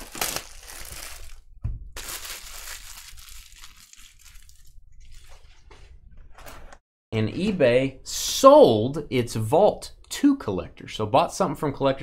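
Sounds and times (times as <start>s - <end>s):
cardboard boxes rustling and crinkling: 0.0s - 1.4s.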